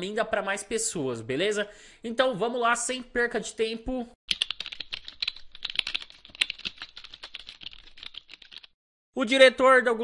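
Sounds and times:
fast keyboard typing: 4.3s - 8.8s.

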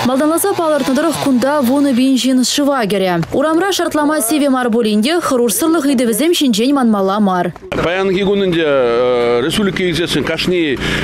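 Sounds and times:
man talking: 7.7s - 11.0s.

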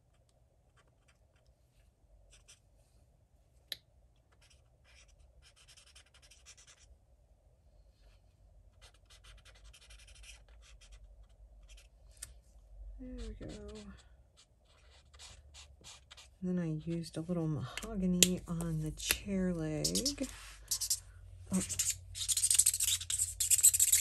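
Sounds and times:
crayon scratching on paper: 4.3s - 6.9s, 8.8s - 11.9s, 13.1s - 17.0s, 19.8s - 24.0s.

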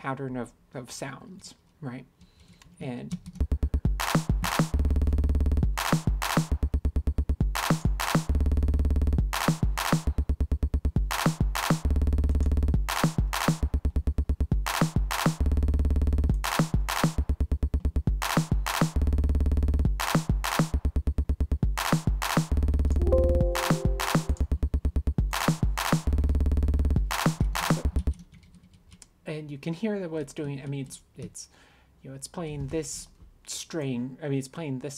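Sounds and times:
electronic drum loop: 23.0s - 24.4s.

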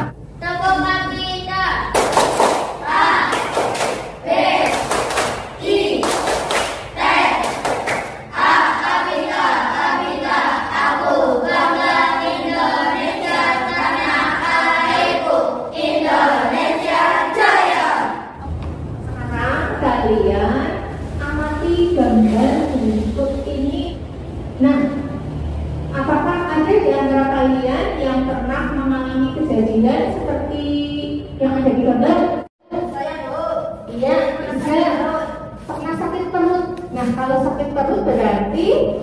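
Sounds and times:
voices: 0.0s - 2.2s, 2.8s - 39.0s
people clapping: 1.9s - 8.3s
children singing together: 8.3s - 18.3s
woman speaking: 18.4s - 24.0s, 24.6s - 25.2s, 25.9s - 39.0s.

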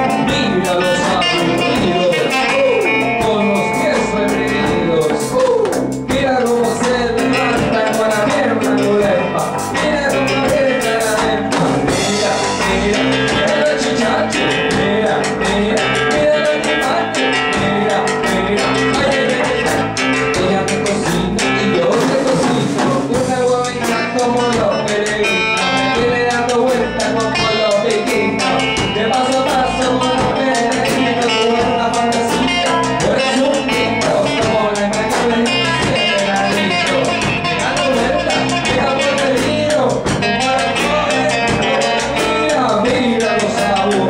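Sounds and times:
acoustic and electric guitars: 0.0s - 44.0s
drum kit: 0.0s - 44.0s
live band playing: 0.0s - 44.0s.

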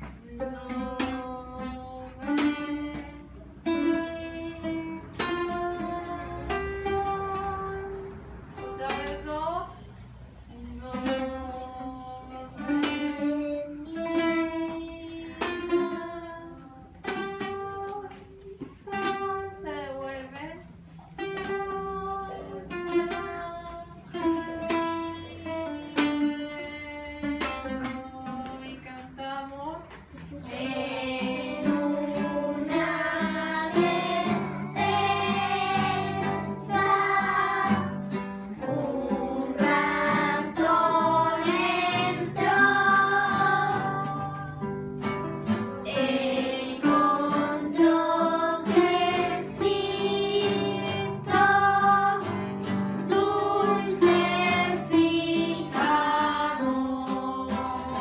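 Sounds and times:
acoustic guitars strummed: 0.0s - 29.2s, 29.8s - 58.0s.

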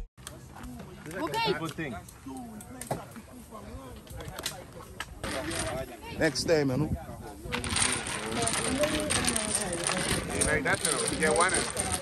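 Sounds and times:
domino tiles clattering: 7.5s - 12.0s.

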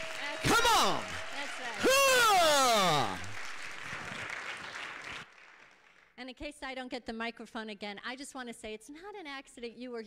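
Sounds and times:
crowd applauding and cheering: 0.0s - 6.0s
whooping shout swooping down: 1.8s - 3.2s.

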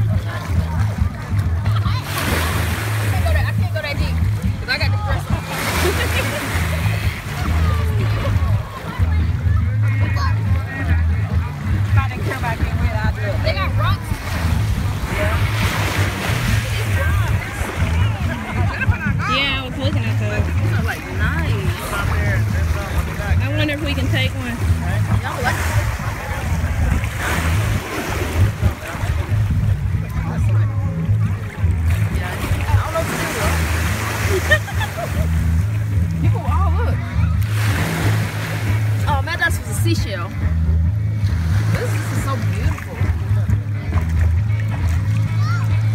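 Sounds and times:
small waves washing on sand: 0.0s - 9.0s, 11.9s - 29.6s, 31.6s - 36.6s, 37.4s - 40.4s
low rumble: 0.0s - 45.9s
people's voices: 0.0s - 45.9s
sea water splashing: 0.0s - 45.9s.

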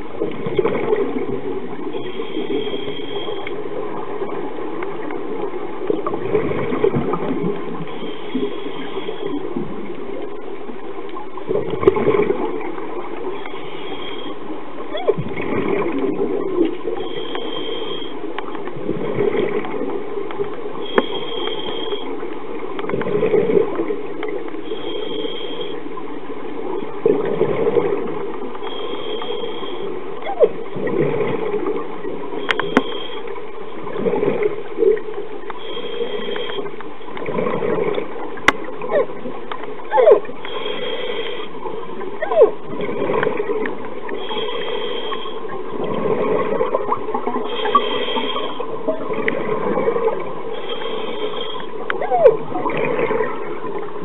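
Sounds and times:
exhaled bubbles gurgling: 0.0s - 54.0s
underwater hiss: 1.8s - 3.8s, 5.9s - 9.9s, 11.8s - 18.6s, 20.6s - 22.4s, 23.2s - 26.0s, 27.8s - 30.2s, 31.4s - 37.1s, 40.2s - 42.2s, 43.4s - 52.0s
scuba regulator inhale hiss: 1.9s - 3.5s, 7.9s - 9.5s, 13.4s - 14.4s, 17.0s - 18.3s, 20.8s - 22.2s, 24.6s - 25.8s, 28.6s - 30.0s, 32.4s - 33.4s, 35.6s - 36.7s, 40.4s - 41.8s, 44.2s - 45.5s, 47.4s - 48.8s, 50.5s - 51.9s.

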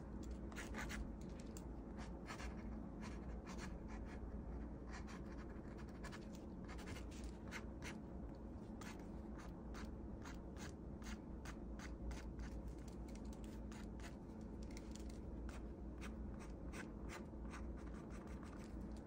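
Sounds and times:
steady low hum: 0.0s - 19.0s
pen scratching on paper: 0.5s - 1.0s, 2.0s - 8.0s, 15.5s - 18.7s.

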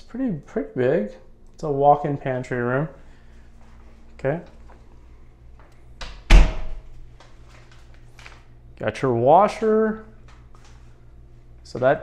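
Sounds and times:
door shutting thud: 6.1s - 6.8s.

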